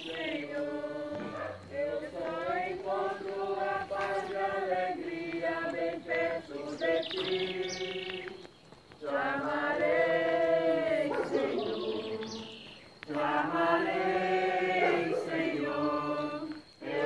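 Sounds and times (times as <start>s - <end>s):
group singing a slow hymn: 0.0s - 17.0s.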